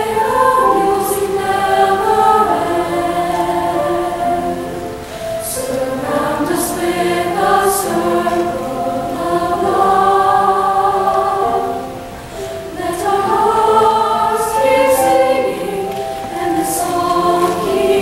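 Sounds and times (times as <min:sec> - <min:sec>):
mixed choir singing: 0:00.0 - 0:18.0.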